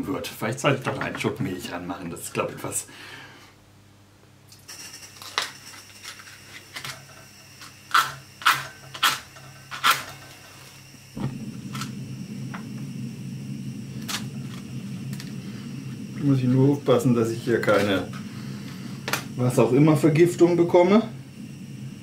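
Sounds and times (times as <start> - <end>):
gas stove flame rushing: 4.5 - 22.0.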